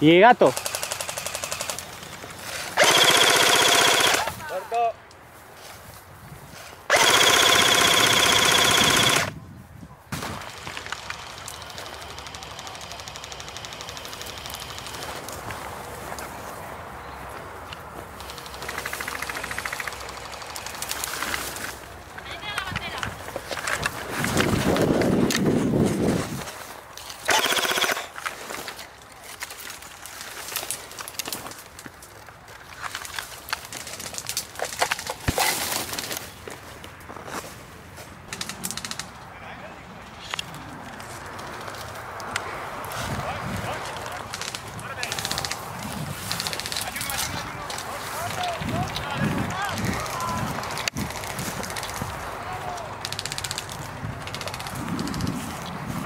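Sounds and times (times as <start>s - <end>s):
airsoft rifle firing bursts: 0.4s - 2.0s, 2.8s - 4.3s, 6.9s - 9.4s, 11.0s - 15.0s, 18.2s - 21.3s, 27.3s - 28.2s.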